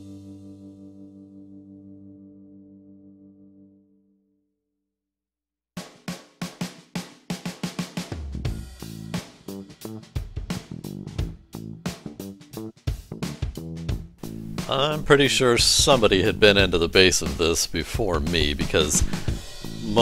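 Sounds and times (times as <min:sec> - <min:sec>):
guitar bass and drums music: 0:08.0 - 0:20.0.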